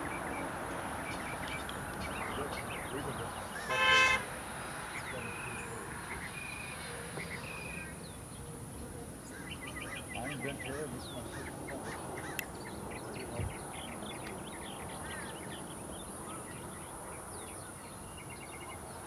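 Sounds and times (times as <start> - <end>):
small birds chirping: 0.0 - 19.0
short horn-like toot: 3.6 - 4.3.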